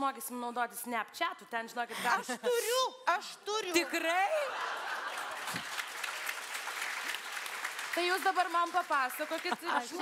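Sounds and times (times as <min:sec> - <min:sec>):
audience applauding: 0:04.7 - 0:10.0.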